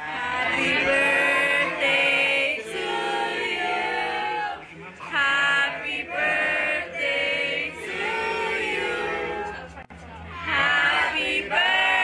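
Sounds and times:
choir singing held notes: 0.0s - 4.6s, 5.2s - 9.6s, 10.4s - 12.0s.

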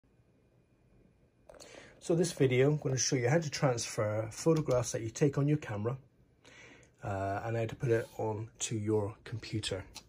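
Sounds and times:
faint breath: 1.5s - 2.0s, 6.4s - 7.0s
person speaking: 1.5s - 6.1s, 7.0s - 10.0s.

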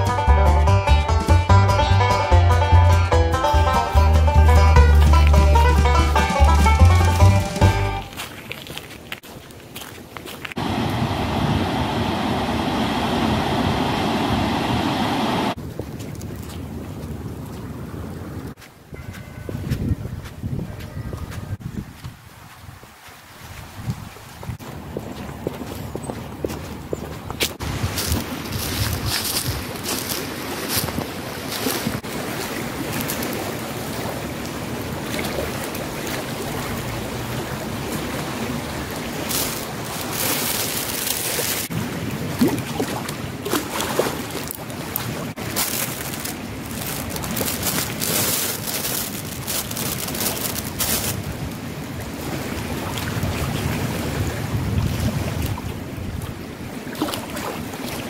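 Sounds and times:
river water against rocks: 3.8s - 19.8s, 21.3s - 58.0s
footsteps crunching on leaves and stones: 6.2s - 10.6s, 18.6s - 32.0s, 39.2s - 41.7s, 44.3s - 51.5s
wind buffeting microphone: 10.5s - 40.2s, 46.2s - 57.9s
fast-flowing river rushing: 10.6s - 15.6s, 29.8s - 41.7s
plastic bag crinkling: 39.3s - 41.7s, 45.4s - 51.4s.

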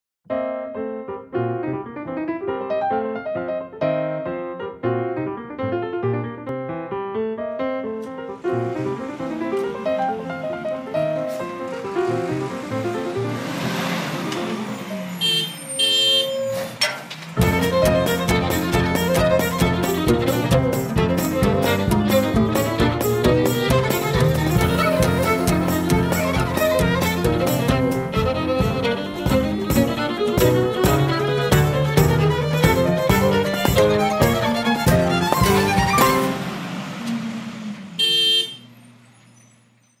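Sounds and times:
piano notes: 0.3s - 37.0s
vehicle horn honking: 15.0s - 16.8s, 38.0s - 39.8s.

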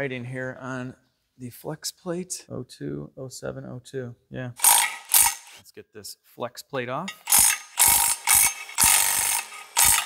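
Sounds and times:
cordless power ratchet running: 4.6s - 5.6s, 7.2s - 10.0s.

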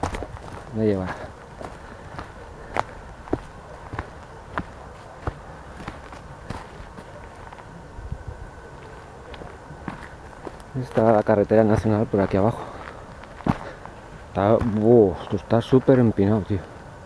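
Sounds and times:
footsteps on stony dirt trail: 0.0s - 7.8s, 8.7s - 16.7s.

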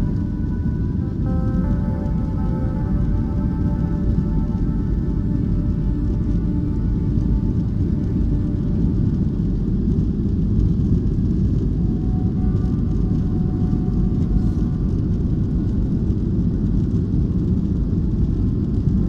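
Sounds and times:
faint music: 0.0s - 19.0s
jet engine and airflow rumble: 0.0s - 19.0s.

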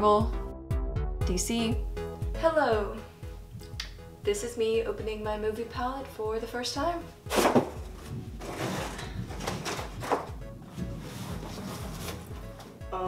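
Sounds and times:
background music: 0.0s - 13.0s
cardboard box tearing and scraping: 7.3s - 7.8s, 8.4s - 10.3s, 11.2s - 12.3s
cardboard rustling: 7.3s - 12.8s.

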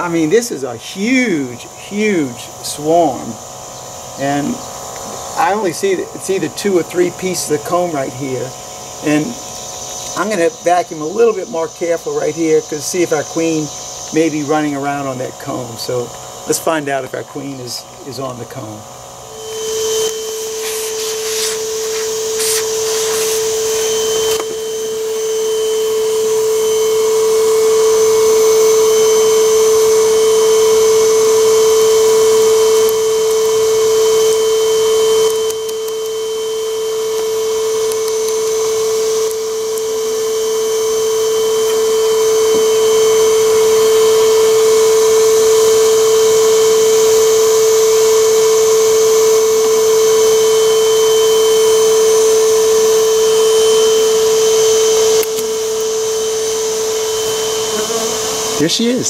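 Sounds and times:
vacuum motor hum with whine: 0.0s - 59.0s.

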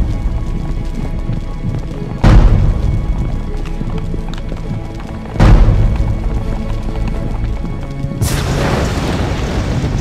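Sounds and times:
dramatic music with low beat: 0.0s - 10.0s
deep boom hit: 2.2s - 3.2s, 5.4s - 6.4s.

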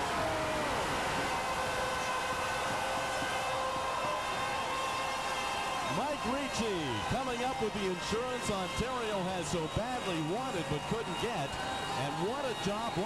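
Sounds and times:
crowd cheering: 0.0s - 13.0s.

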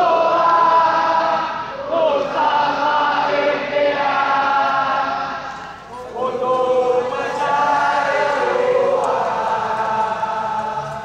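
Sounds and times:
crowd singing together: 0.0s - 11.0s.

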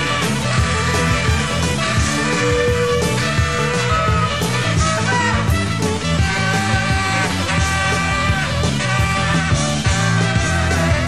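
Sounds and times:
bass line: 0.0s - 11.0s
drum beat: 0.0s - 11.0s
live rock band playing: 0.0s - 11.0s.

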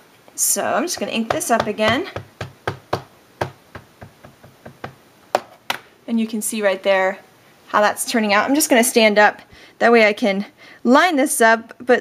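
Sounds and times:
ink pad tapping on stamp: 0.9s - 5.8s
sharp knocks: 0.9s - 5.9s.

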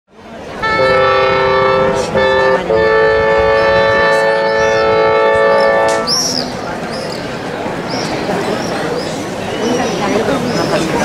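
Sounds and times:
woodwind ensemble playing chords: 0.6s - 6.4s.

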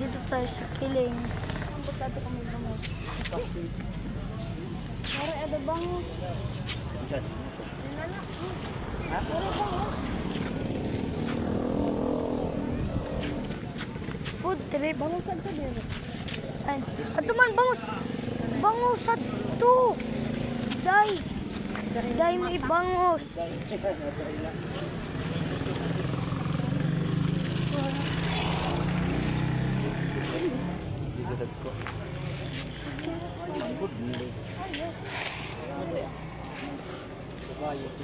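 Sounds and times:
faint voices: 0.0s - 38.0s
vehicle engine droning: 7.8s - 15.8s, 18.0s - 38.0s
vehicle engine running: 24.2s - 34.9s.

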